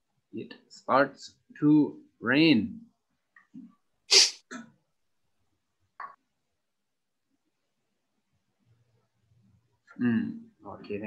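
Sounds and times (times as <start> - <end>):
person sneezing: 4.1 - 4.5.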